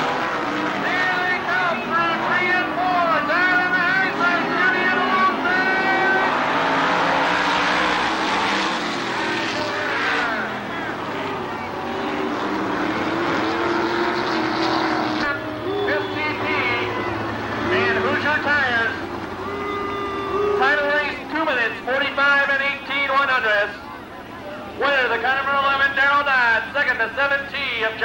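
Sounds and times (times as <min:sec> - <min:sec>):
racing car engines: 0:00.0 - 0:28.0
announcer talking over loudspeaker: 0:00.6 - 0:14.0, 0:15.0 - 0:28.0.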